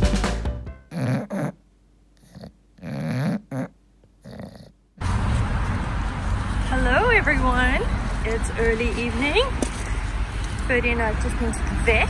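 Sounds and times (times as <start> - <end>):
intro music: 0.0 - 0.9
outdoor background hiss: 0.8 - 12.0
dog grunting and snorting: 0.9 - 1.6, 2.2 - 4.8.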